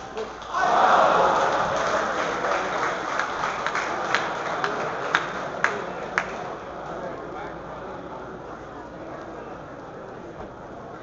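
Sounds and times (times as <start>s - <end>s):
audience clapping: 0.2s - 6.6s.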